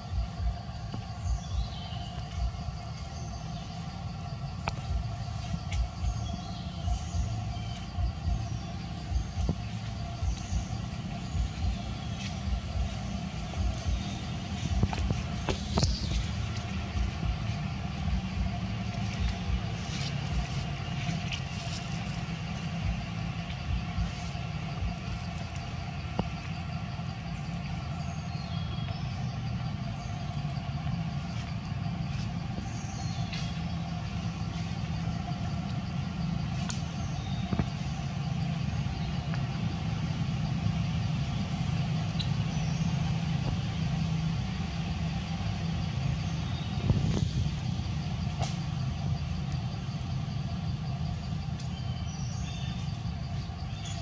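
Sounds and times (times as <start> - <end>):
low mechanical drone: 0.0 - 54.0.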